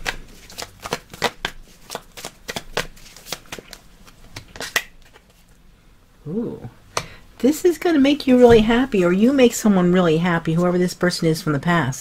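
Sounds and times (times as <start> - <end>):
cards being shuffled: 0.0 - 5.4.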